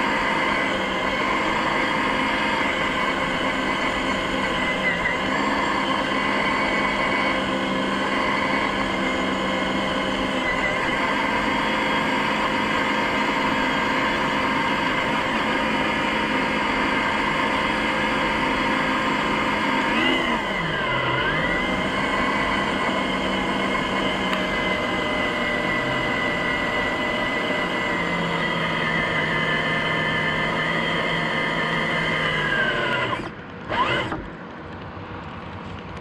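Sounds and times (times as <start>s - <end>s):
car road and engine noise: 0.0s - 36.0s
high whine: 0.0s - 36.0s.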